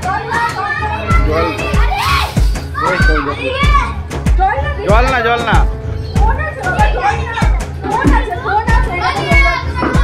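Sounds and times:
children calling and playing: 0.0s - 10.0s
music with steady bass beat: 3.6s - 10.0s.

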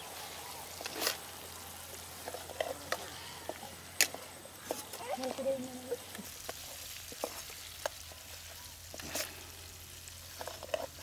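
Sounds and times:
fish and onions sizzling in oil: 0.0s - 11.0s.

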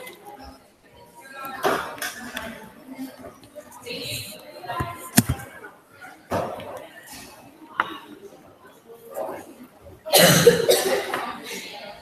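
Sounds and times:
person coughing: 10.1s - 11.2s.

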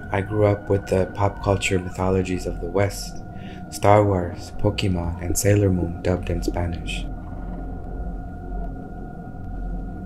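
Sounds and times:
ambient drone music: 0.0s - 10.0s.

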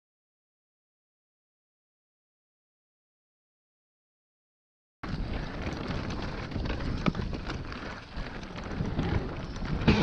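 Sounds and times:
bike clicks and rattles: 5.0s - 10.0s
tyres rolling on dirt: 5.0s - 10.0s
wind over microphone: 5.0s - 10.0s.

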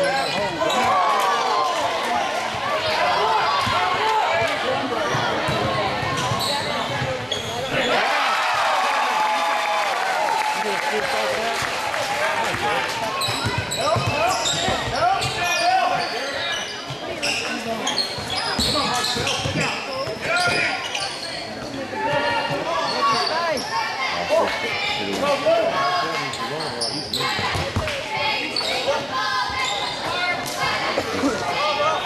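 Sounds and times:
crowd chatter: 0.0s - 32.0s.

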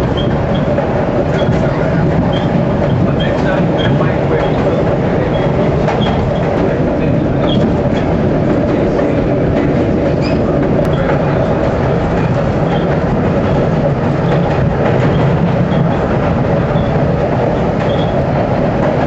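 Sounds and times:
wheels rumbling on rail: 0.0s - 19.0s.

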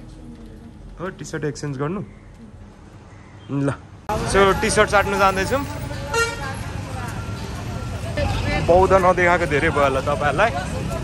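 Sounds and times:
motorbikes and cars passing: 4.0s - 11.0s.

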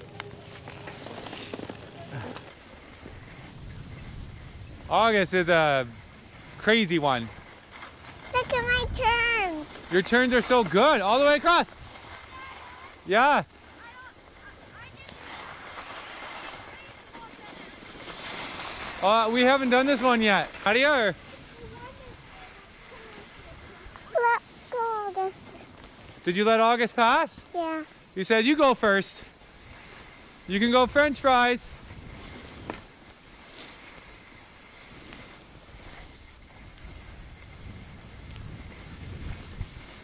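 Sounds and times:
skis hissing over snow: 0.3s - 40.0s
wind on microphone: 3.0s - 5.2s, 35.7s - 40.0s.

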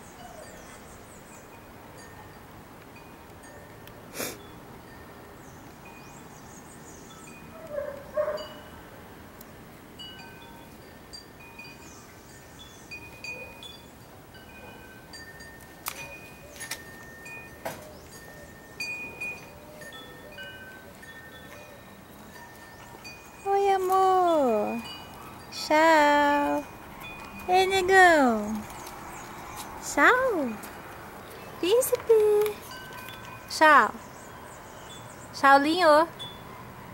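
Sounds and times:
wind chimes ringing: 8.3s - 9.2s, 10.0s - 30.7s, 31.3s - 35.3s, 35.9s - 36.7s.

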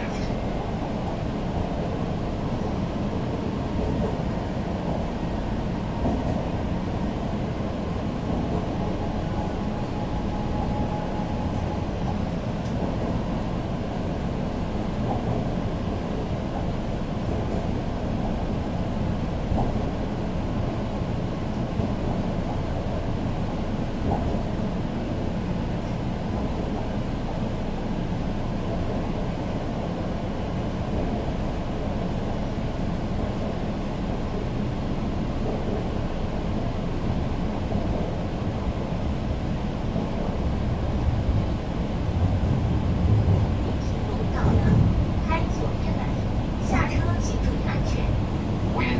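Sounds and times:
subway train rumbling: 0.0s - 48.9s.

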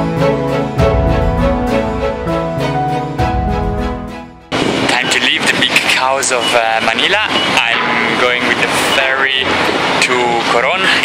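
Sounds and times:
background music: 0.0s - 5.3s
noisy outdoor din with voices: 4.6s - 11.0s.

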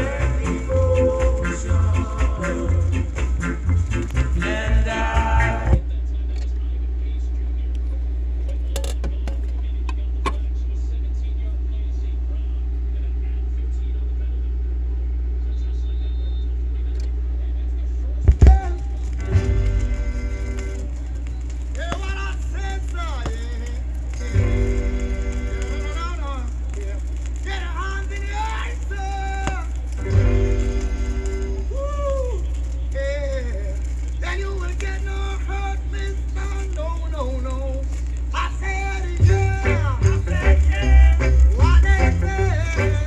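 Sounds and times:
reggae song with singing: 0.0s - 6.3s, 18.3s - 43.0s
low electrical hum: 0.0s - 43.0s.

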